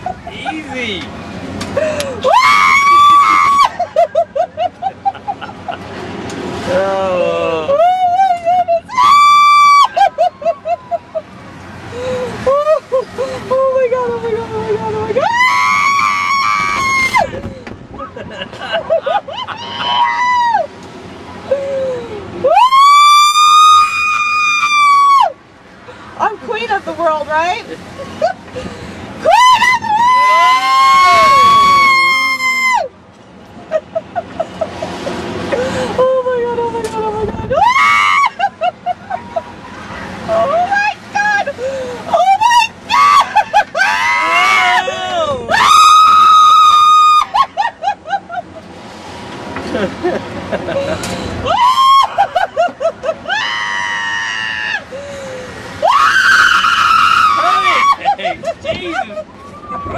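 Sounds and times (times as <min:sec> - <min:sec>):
woman screaming: 0:02.2 - 0:03.8, 0:07.7 - 0:10.1, 0:15.2 - 0:17.3, 0:19.6 - 0:20.7, 0:22.4 - 0:25.3, 0:29.2 - 0:32.9, 0:36.0 - 0:38.5, 0:42.1 - 0:47.7, 0:51.4 - 0:52.4, 0:53.3 - 0:54.8, 0:55.8 - 0:58.1
lower voice screaming: 0:29.2 - 0:32.9, 0:42.1 - 0:47.4, 0:55.8 - 0:58.1.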